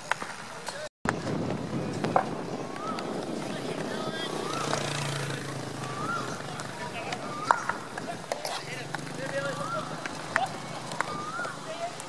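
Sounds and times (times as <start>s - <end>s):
distant calls: 1.9s - 12.0s
hockey stick striking ball: 6.5s - 9.4s.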